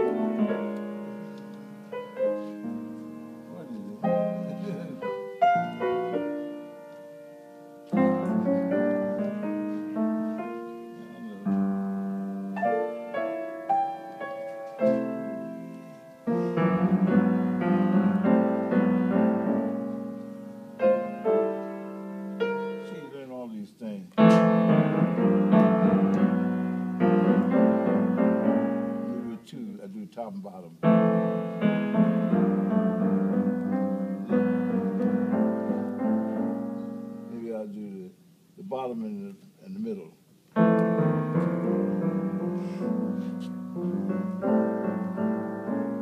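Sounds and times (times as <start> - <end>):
piano playing jazz chords: 0.0 - 29.6, 30.7 - 38.1, 40.4 - 46.0.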